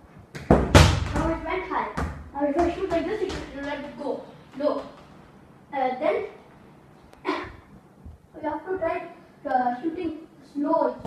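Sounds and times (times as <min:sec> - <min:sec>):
ball hitting hard surface: 0:00.3 - 0:03.6
foot kicking football: 0:00.3 - 0:03.8.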